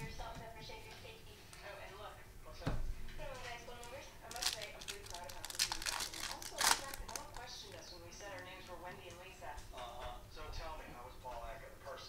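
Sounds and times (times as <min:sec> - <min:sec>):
plastic wrapper tearing and crinkling: 0:03.8 - 0:08.5.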